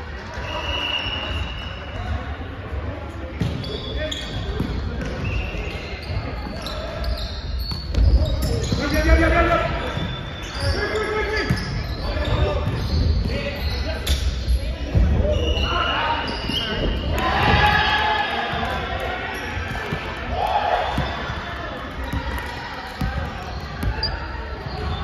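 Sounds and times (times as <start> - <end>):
players shouting calls: 15.3 - 25.0.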